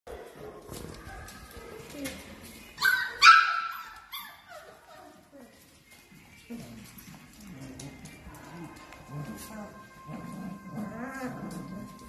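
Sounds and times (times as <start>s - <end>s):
puppies whining: 2.5s - 12.0s
puppies yipping and yelping: 2.8s - 5.7s.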